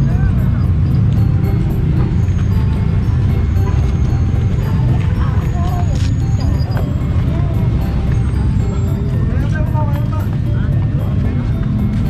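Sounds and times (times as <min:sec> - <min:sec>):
low traffic rumble: 0:00.0 - 0:12.0
murmur of voices: 0:00.0 - 0:12.0
music with steady beat: 0:00.0 - 0:12.0.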